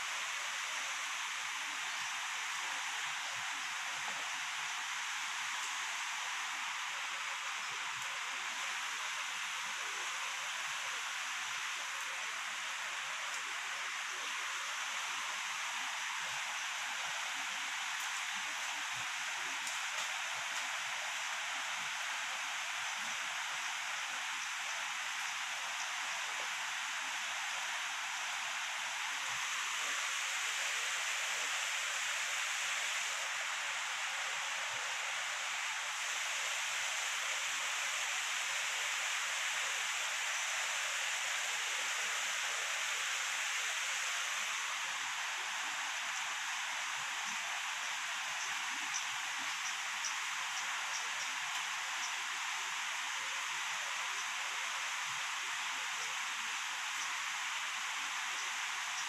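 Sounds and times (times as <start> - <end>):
outdoor background hiss: 0.0 - 59.0.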